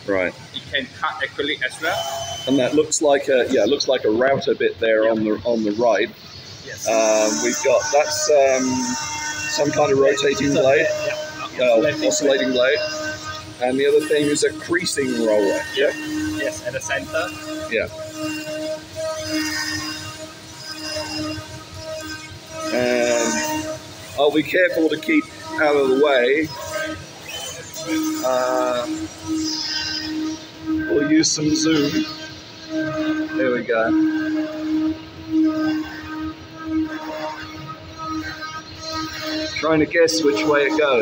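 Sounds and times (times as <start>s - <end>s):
flatbed cutter machine hum: 0.0s - 41.0s.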